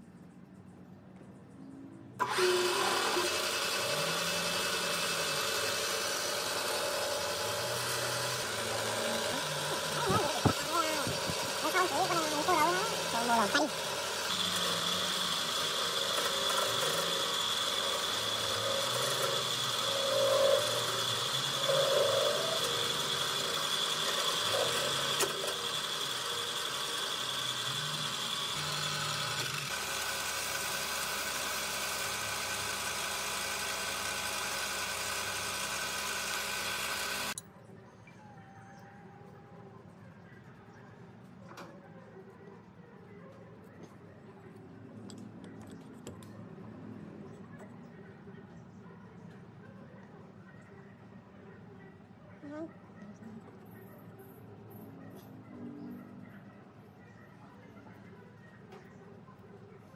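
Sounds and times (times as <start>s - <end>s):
lathe cutting wood: 2.2s - 37.4s.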